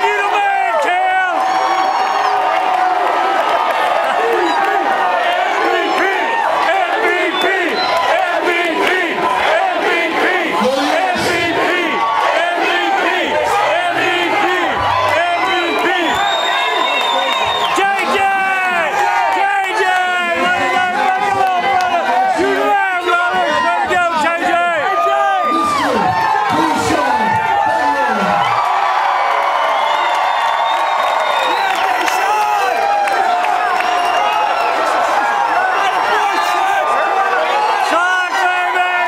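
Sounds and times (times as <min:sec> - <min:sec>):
crowd cheering and shouting: 0:00.0 - 0:39.0.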